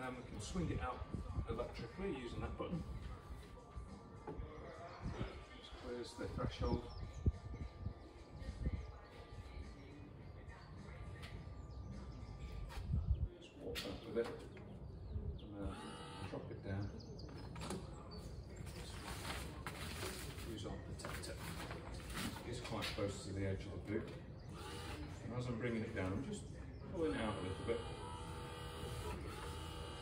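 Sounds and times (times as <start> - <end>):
electric motor whining: 15.6 - 16.4, 27.1 - 30.0.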